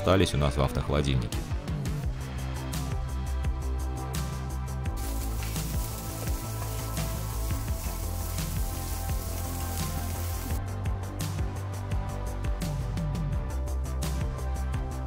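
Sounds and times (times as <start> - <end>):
background music: 0.0 - 15.0
food sizzling in a frying pan: 5.0 - 10.6.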